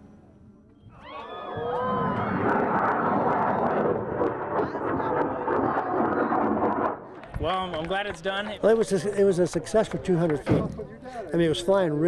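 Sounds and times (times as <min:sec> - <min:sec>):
crowd shouting: 0:00.9 - 0:04.1
rocket motor roaring: 0:01.5 - 0:07.1.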